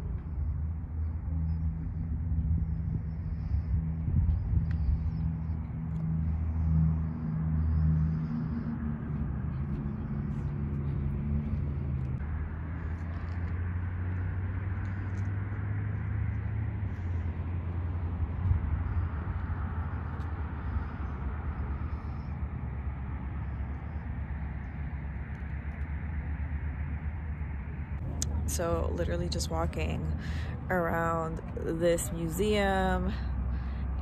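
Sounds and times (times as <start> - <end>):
low mechanical rumble with hum: 0.0 - 34.0.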